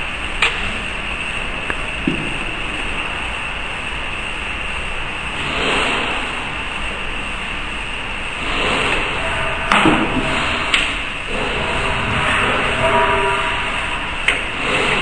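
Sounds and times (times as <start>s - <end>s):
steady rushing noise: 5.2s - 15.0s.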